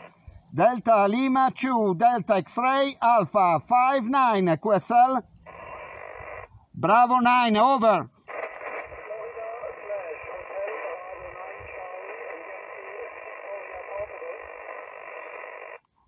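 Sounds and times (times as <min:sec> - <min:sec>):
radio static: 0:00.0 - 0:01.3, 0:04.8 - 0:15.9
faint radio voice: 0:08.3 - 0:15.7.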